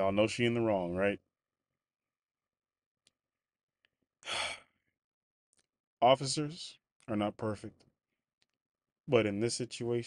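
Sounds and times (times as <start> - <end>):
man sighing: 4.2 - 4.8.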